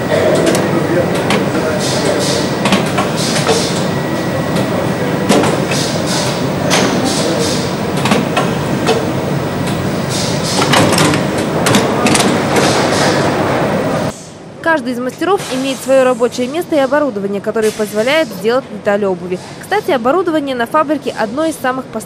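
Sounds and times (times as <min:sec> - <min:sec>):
shoe-lasting machine working: 0:00.0 - 0:14.1
factory din: 0:00.0 - 0:21.9.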